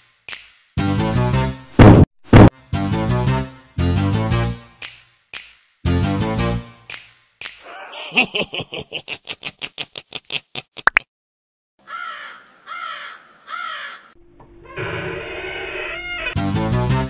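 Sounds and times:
witch cackling laugh: 0:07.6 - 0:10.9
crow cawing: 0:11.8 - 0:16.4.

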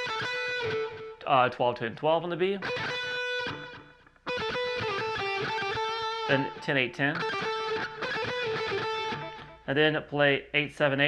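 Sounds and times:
electric guitar picked notes: 0:00.0 - 0:01.3, 0:02.6 - 0:09.7.

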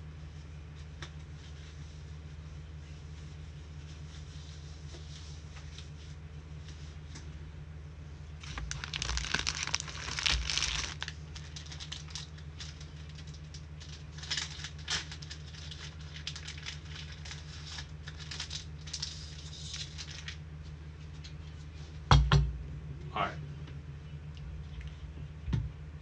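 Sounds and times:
low electrical hum: 0:00.0 - 0:26.0
card wrappers crinkling and tearing: 0:08.4 - 0:20.4.

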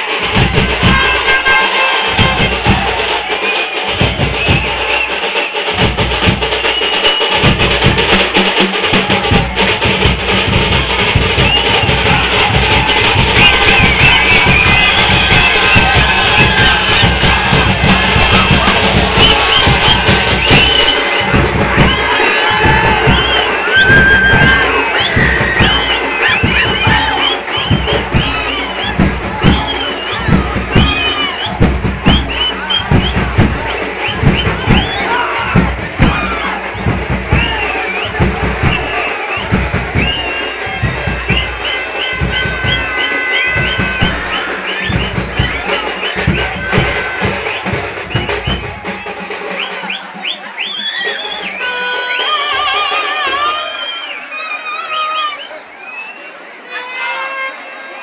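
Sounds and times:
loud music: 0:00.0 - 0:50.5
heavy drumbeat: 0:00.0 - 0:53.6
crowd shouting and cheering: 0:00.0 - 0:58.0.

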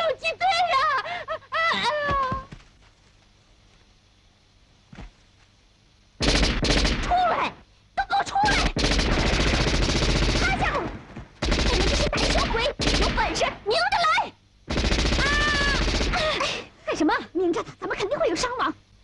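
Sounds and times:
automatic gunfire: 0:06.2 - 0:07.2, 0:08.5 - 0:13.6, 0:14.7 - 0:16.5.

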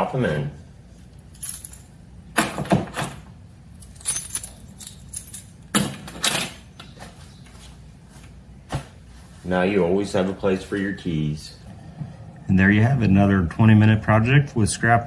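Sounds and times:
metal keys jangling: 0:01.3 - 0:02.0, 0:02.9 - 0:06.6.

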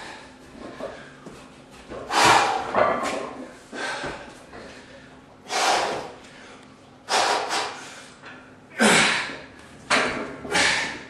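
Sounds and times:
man breathing hard: 0:02.1 - 0:02.8, 0:03.5 - 0:09.5, 0:10.5 - 0:11.0.

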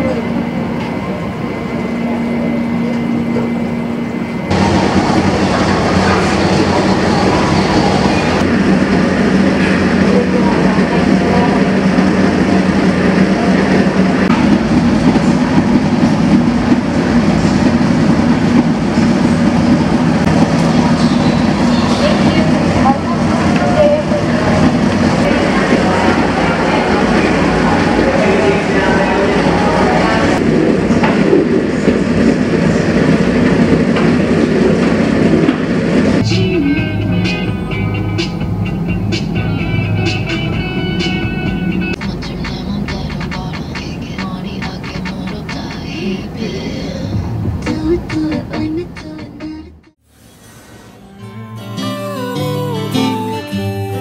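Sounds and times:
indistinct chatter: 0:00.0 - 0:14.5, 0:20.6 - 0:33.1.

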